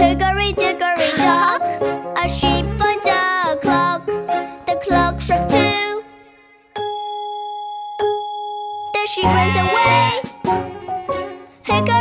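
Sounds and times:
clock bell chiming: 0:06.8 - 0:09.7.

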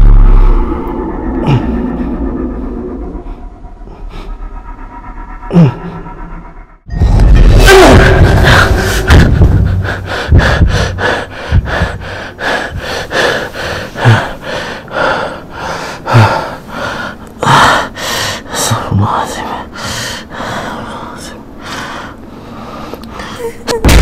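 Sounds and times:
man panting: 0:08.0 - 0:20.9.

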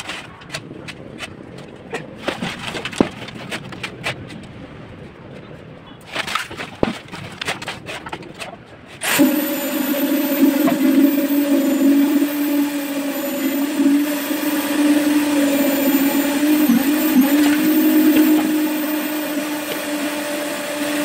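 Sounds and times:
concrete vibrator humming: 0:09.0 - 0:21.0.

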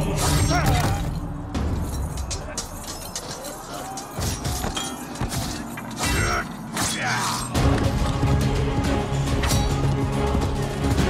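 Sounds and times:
dramatic film music: 0:00.0 - 0:11.0.

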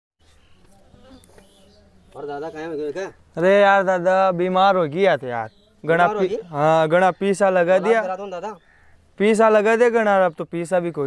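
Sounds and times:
insect buzzing faintly: 0:00.2 - 0:03.4.

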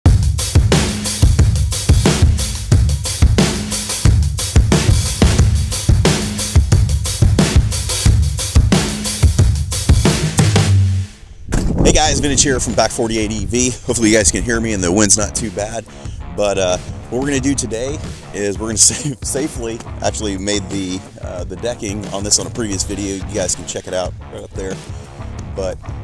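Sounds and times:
drum and bass intro music: 0:00.0 - 0:26.0.

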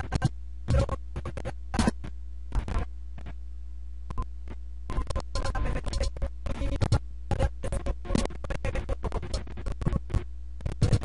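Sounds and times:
stuttering electronic music: 0:00.0 - 0:02.0, 0:04.9 - 0:11.0
scratch-like cuts: 0:00.0 - 0:03.4, 0:04.5 - 0:11.0.

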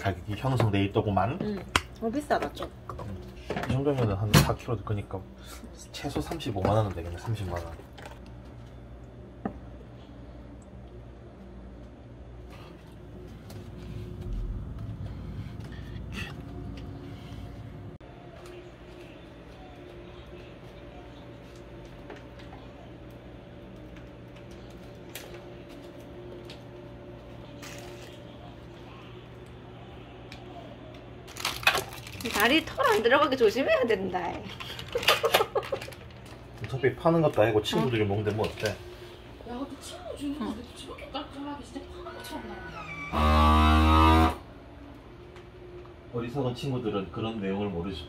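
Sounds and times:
steady low hum: 0:00.0 - 0:32.2
vacuum sealer pump buzzing: 0:42.9 - 0:44.5.

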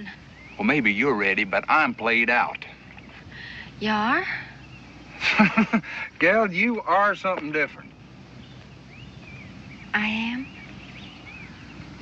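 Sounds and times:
faint bird chirps: 0:00.0 - 0:12.0
low steady hum: 0:00.0 - 0:12.0.

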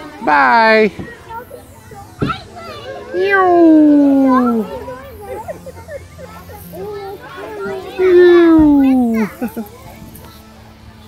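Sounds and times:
children chattering and calling: 0:00.0 - 0:11.0.

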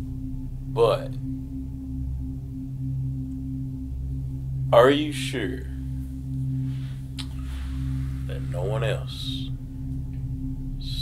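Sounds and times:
low droning music: 0:00.0 - 0:11.0.

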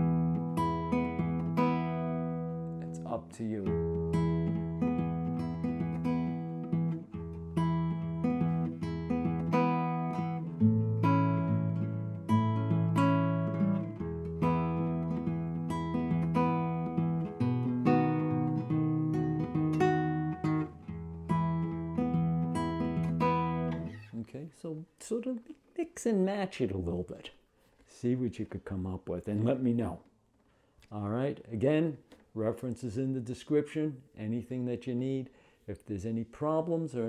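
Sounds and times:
fingerpicked acoustic guitar: 0:00.0 - 0:24.2.

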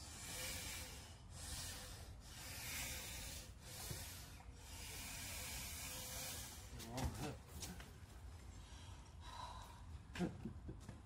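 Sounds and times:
hard hissing breaths: 0:00.0 - 0:06.9.

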